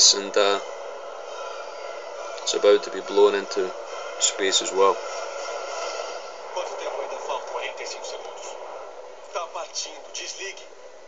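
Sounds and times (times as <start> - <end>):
steady hiss: 0.0 - 11.0.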